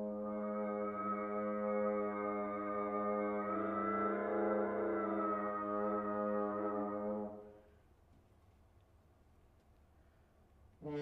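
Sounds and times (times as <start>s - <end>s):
french horn low note: 0.0s - 7.6s.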